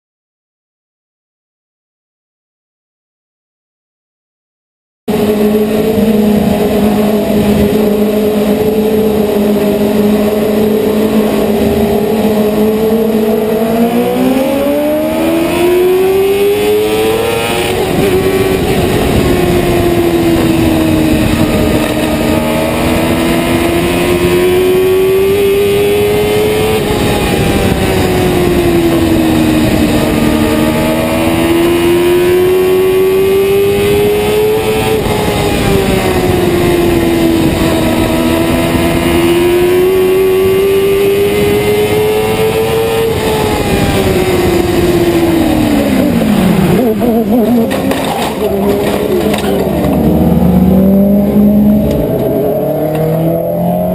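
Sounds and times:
race car engine: 5.1 - 53.9
wind and vibration rumble: 5.1 - 53.9.

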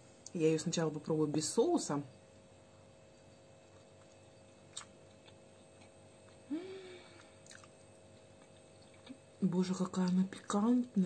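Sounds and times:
closed-mouth hum: 2.1 - 11.0
quiet chewing: 3.2 - 11.0
soft mouth clicks: 4.1 - 7.8.

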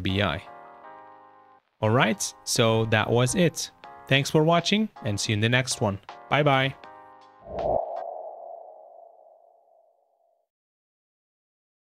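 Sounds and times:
mid-pitched synth tone: 7.5 - 9.9.

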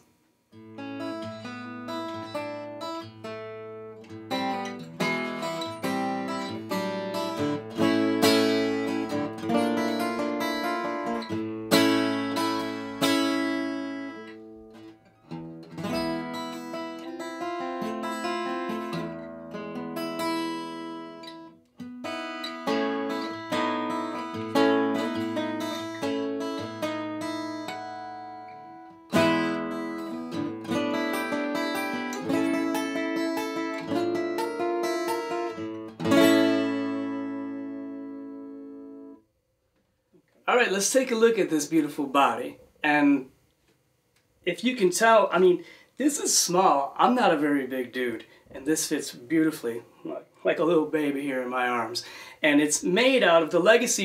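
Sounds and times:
acoustic guitar fingerpicking and strumming: 0.5 - 39.3.

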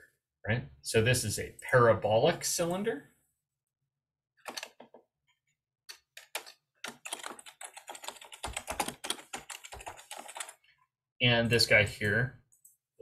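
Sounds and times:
computer keyboard typing: 5.9 - 10.6.

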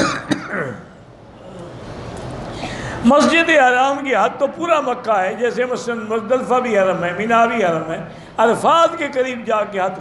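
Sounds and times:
man coughing to clear throat: 0.0 - 1.0.

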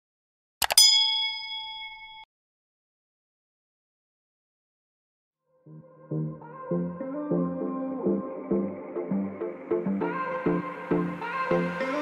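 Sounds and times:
notification bell ding: 0.6 - 2.3.

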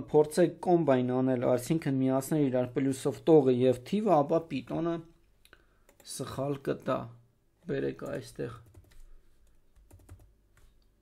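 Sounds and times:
faint computer keystrokes: 8.0 - 11.0.

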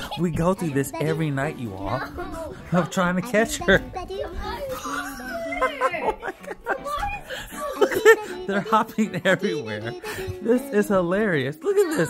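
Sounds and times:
indistinct talking: 0.0 - 12.0
high child-like voice: 1.0 - 5.9.

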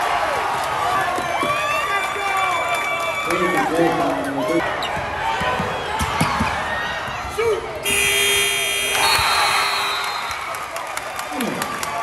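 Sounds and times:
crowd noise and voices: 0.0 - 12.0
scoreboard buzzer: 7.8 - 10.2.

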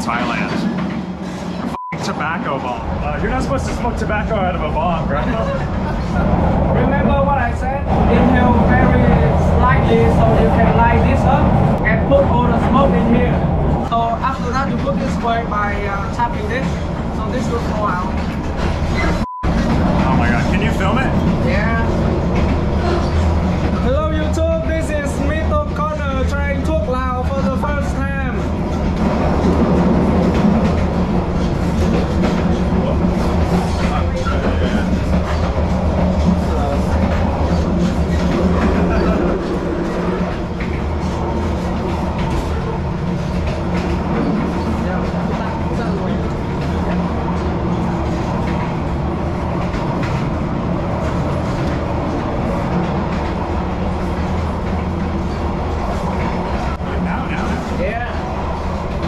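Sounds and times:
passenger train rumble: 0.0 - 59.0.

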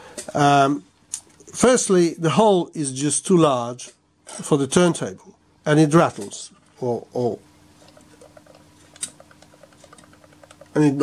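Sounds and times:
disc rattling in cd player: 7.8 - 11.0.

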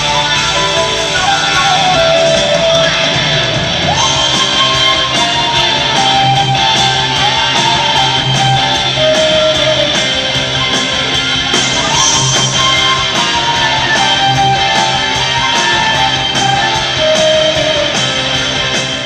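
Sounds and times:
flute melody: 0.0 - 19.0
live rock band playing: 0.0 - 19.0.

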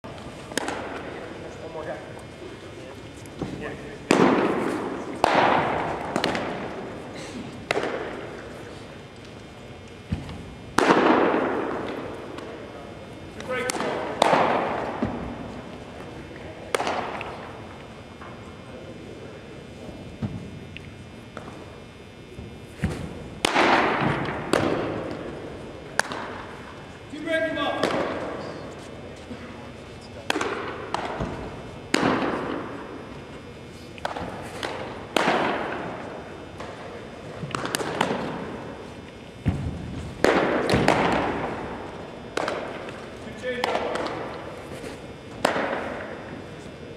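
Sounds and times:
baseballs smacking into mitts: 0.4 - 1.2, 3.3 - 6.9, 7.6 - 8.4, 13.4 - 15.4, 16.7 - 17.6, 22.4 - 26.6, 27.6 - 28.4, 30.2 - 32.9, 34.0 - 46.2.

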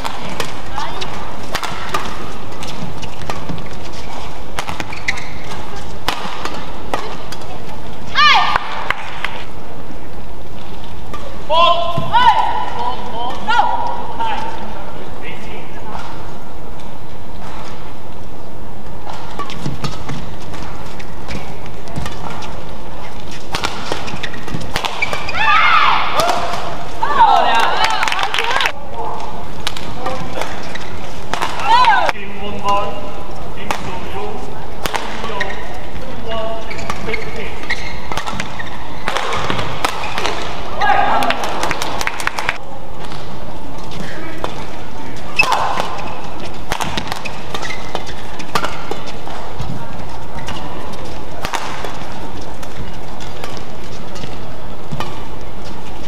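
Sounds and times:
rackets striking shuttlecock: 0.0 - 7.7, 18.8 - 25.4, 26.0 - 27.8, 29.6 - 33.0, 33.6 - 35.8, 36.6 - 55.4
shoes squeaking on court: 0.0 - 9.6, 15.3 - 27.9, 29.2 - 32.1, 32.7 - 56.0
arena crowd noise: 0.0 - 56.0.

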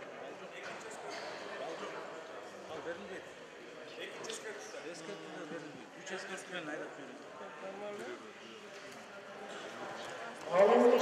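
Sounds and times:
sports hall hum: 0.0 - 11.0.

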